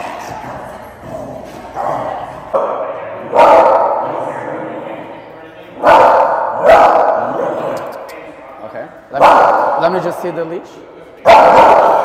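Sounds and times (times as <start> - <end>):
dog barking sharply: 5.8 - 7.2, 9.2 - 9.8, 11.3 - 12.0.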